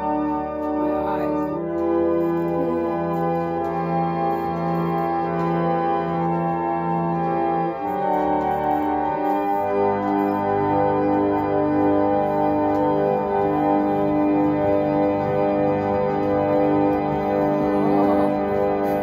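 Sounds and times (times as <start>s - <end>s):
reed organ playing chords: 0.0s - 19.0s.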